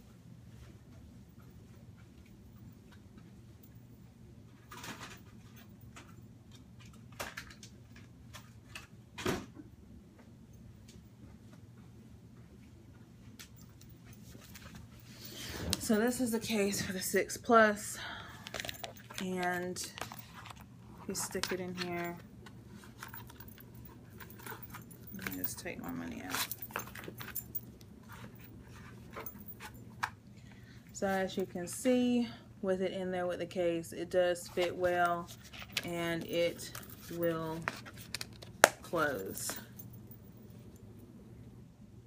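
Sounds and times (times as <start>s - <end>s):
low steady hum: 0.0s - 42.0s
rummaging knocks and rustles: 18.4s - 30.2s, 34.5s - 39.9s.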